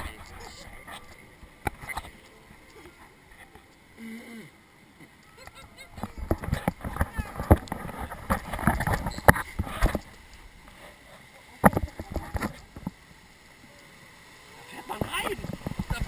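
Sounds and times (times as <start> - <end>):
water splashing against raft: 0.0 - 16.0.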